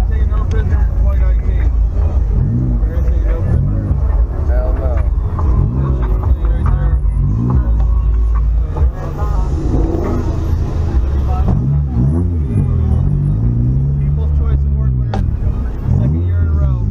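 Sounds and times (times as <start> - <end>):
car engine and road rumble: 0.0 - 16.9.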